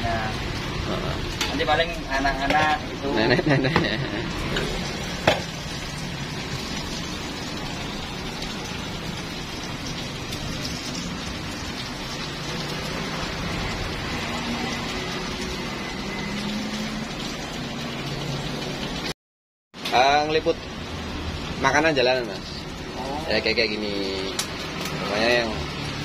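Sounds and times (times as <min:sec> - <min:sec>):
food sizzling in a pan: 0:00.0 - 0:19.1, 0:19.8 - 0:26.0.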